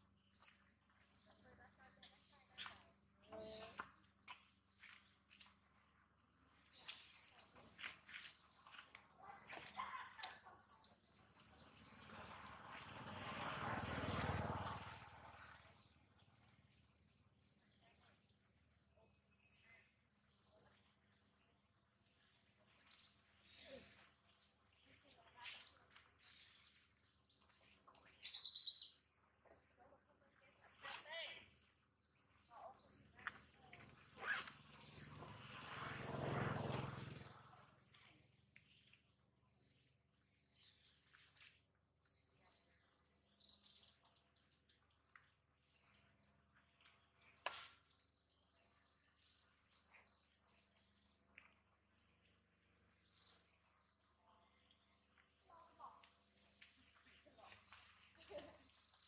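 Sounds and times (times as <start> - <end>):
small birds chirping: 0.0 - 59.0.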